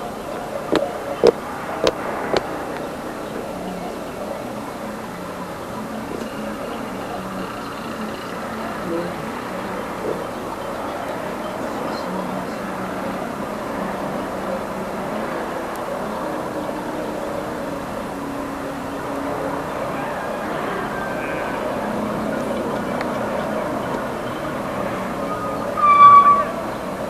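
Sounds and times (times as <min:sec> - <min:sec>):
outdoor background noise: 0:00.0 - 0:27.0.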